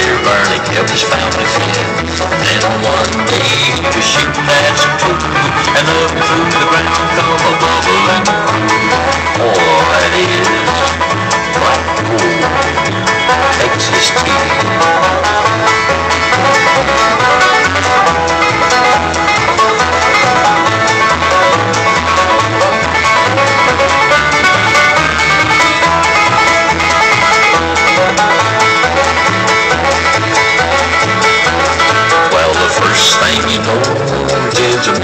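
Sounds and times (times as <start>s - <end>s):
bluegrass banjo and guitar music: 0.0s - 35.0s.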